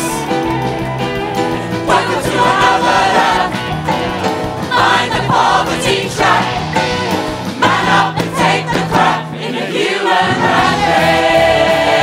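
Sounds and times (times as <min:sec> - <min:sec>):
choir singing with instruments: 0:00.0 - 0:12.0.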